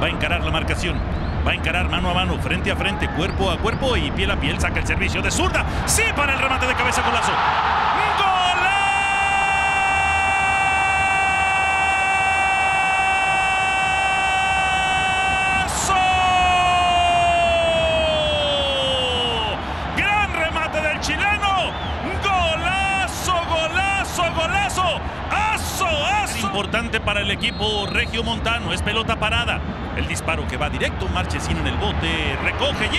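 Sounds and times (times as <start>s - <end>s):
fast excited commentary: 0.0s - 9.4s, 15.1s - 32.9s.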